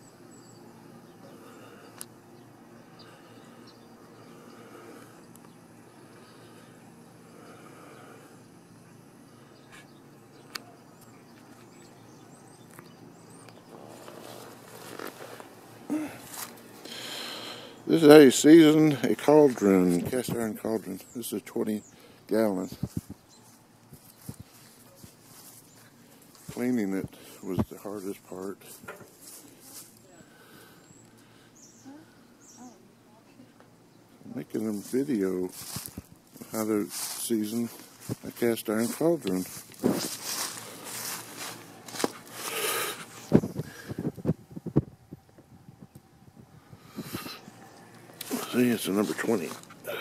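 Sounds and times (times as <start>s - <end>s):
footsteps: 13.7s - 16.6s, 22.7s - 30.0s, 34.7s - 45.4s, 48.1s - 50.0s.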